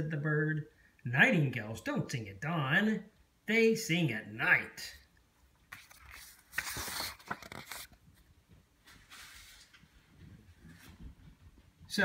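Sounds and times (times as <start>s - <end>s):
faint paper rustle: 5.7s - 11.6s.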